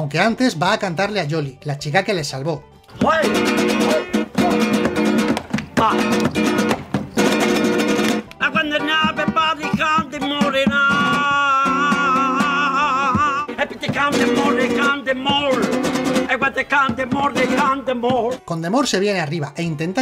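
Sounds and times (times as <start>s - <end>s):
acoustic guitar strumming: 2.7s - 19.9s.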